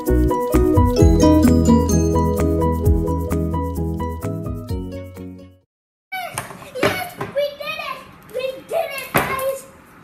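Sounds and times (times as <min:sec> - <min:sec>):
background music: 0:00.0 - 0:05.6.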